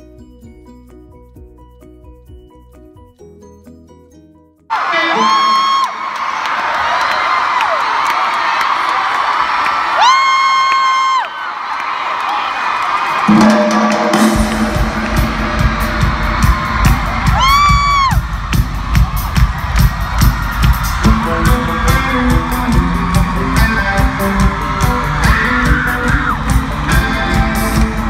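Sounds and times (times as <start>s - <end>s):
drum beat: 13.1s - 28.0s
live rock band: 13.2s - 28.0s
guitar and bass notes: 13.3s - 18.2s, 20.9s - 28.0s.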